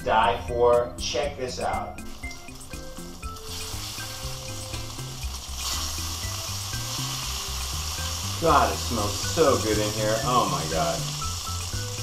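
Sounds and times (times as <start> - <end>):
bacon sizzling in a skillet: 2.0 - 12.0.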